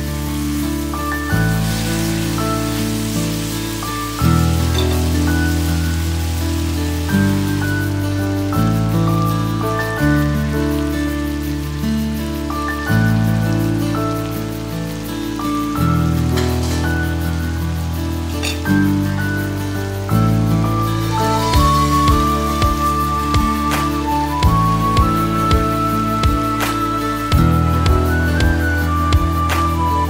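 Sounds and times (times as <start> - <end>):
background music with sustained chords: 0.0 - 30.0
food frying in a wok: 0.0 - 30.0.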